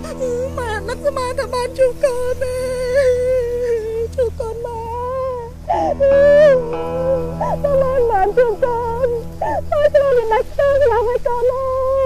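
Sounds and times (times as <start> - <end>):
soft background music: 0.0 - 12.0
woman wailing a long note: 0.0 - 12.0.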